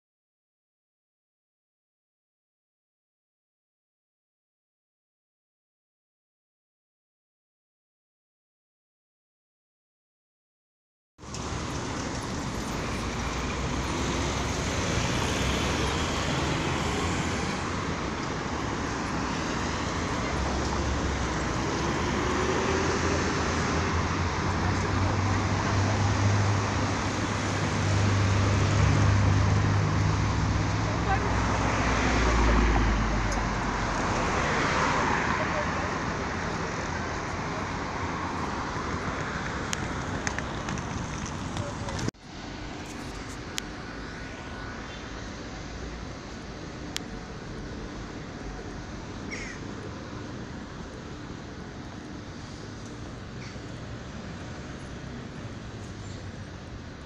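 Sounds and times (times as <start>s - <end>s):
cars passing: 11.2s - 57.0s.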